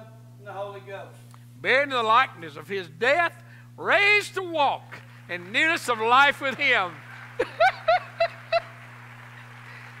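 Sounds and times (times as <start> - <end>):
person laughing: 7.4 - 8.8.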